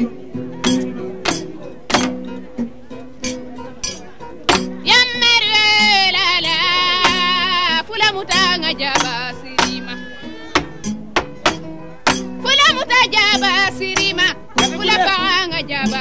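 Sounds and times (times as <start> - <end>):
kora plucked: 0.0 - 16.0
sharp percussive strikes: 0.6 - 2.3, 10.6 - 12.5
high voice singing: 4.8 - 10.9, 12.4 - 16.0.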